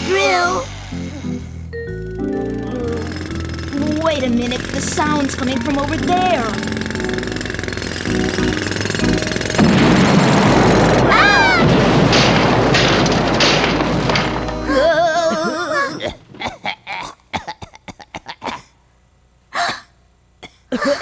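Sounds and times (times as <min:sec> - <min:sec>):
comic power tool sound effects: 0:00.0 - 0:11.8.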